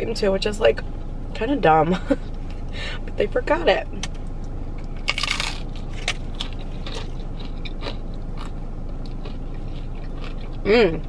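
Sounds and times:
steady low hum: 0.0s - 11.0s
crunching hard taco shell: 5.0s - 10.6s.

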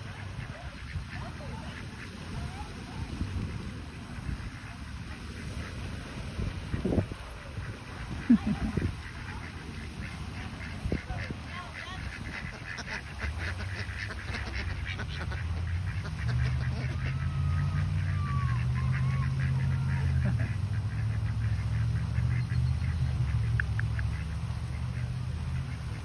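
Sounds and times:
ducks quacking: 0.0s - 26.0s.

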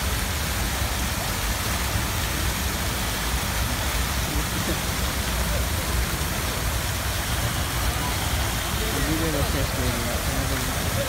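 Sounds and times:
fountain water splashing: 0.0s - 11.0s
faint voice: 4.2s - 11.0s.

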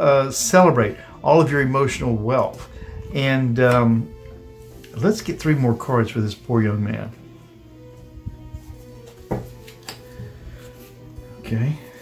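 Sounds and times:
soft background music: 0.0s - 12.0s
cards clicking: 9.5s - 10.1s.

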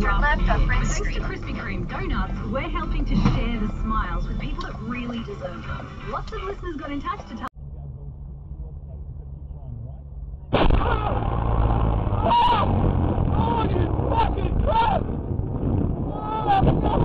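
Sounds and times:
road and engine noise in car: 0.0s - 10.4s.

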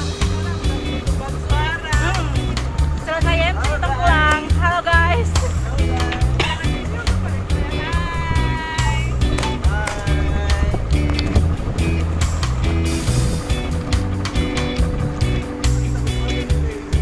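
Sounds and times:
background music with steady beat: 0.0s - 17.0s.

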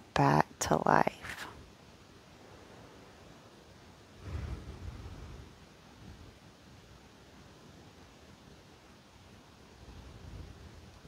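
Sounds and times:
soft low swell of noise: 2.4s - 6.6s.

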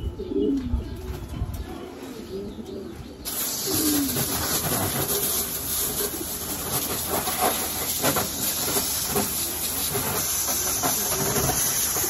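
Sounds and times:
pigeons cooing: 0.0s - 12.0s
hose spraying water: 3.2s - 12.0s.

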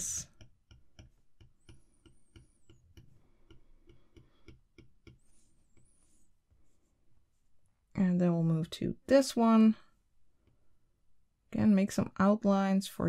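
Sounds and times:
stylus tapping on glass screen: 0.2s - 5.9s.

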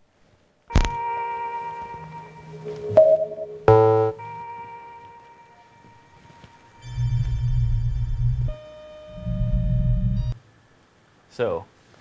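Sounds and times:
high held tones: 0.7s - 10.4s
falling synth sweep: 1.4s - 8.6s
deep bass swells: 2.0s - 5.2s, 5.9s - 8.6s.

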